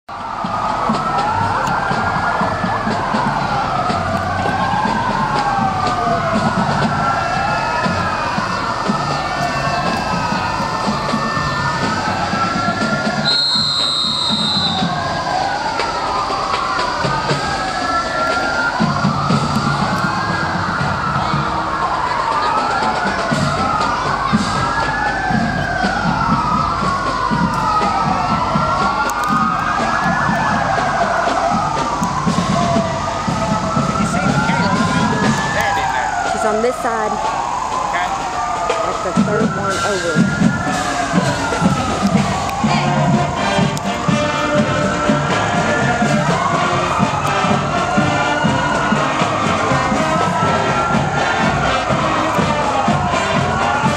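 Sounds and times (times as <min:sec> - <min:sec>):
sirens wailing: 0:00.0 - 0:53.9.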